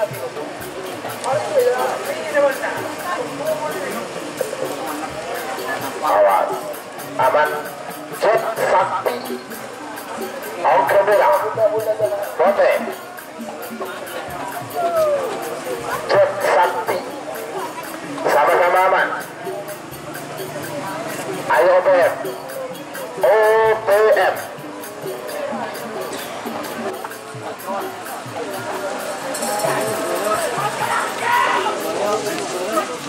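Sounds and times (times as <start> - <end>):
crowd voices: 0.0 - 33.0
drum music: 0.0 - 33.0
wailing shawm: 14.3 - 19.4, 23.1 - 33.0.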